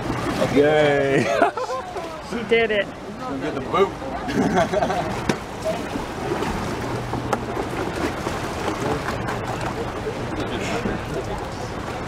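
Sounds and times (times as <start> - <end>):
low steady hum: 0.0 - 12.0
water noise: 0.0 - 12.0
wind: 0.0 - 12.0.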